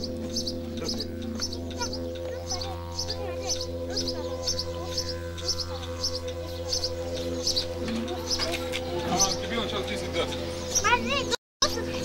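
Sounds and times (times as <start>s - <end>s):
small bird chirping: 0.0s - 12.0s
steady droning tone: 0.0s - 12.0s.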